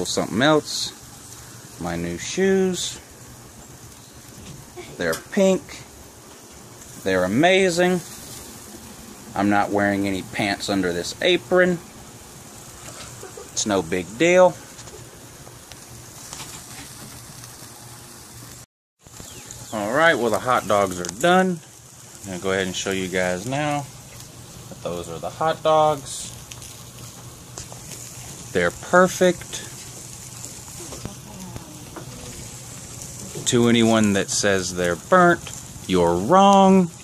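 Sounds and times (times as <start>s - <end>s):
faint crackles: 0.0s - 37.0s
meat sizzling on a grill: 0.0s - 37.0s.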